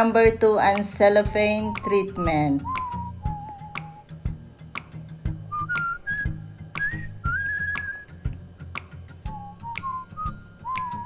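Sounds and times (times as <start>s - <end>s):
whistled melody over beat: 0.7s - 11.0s.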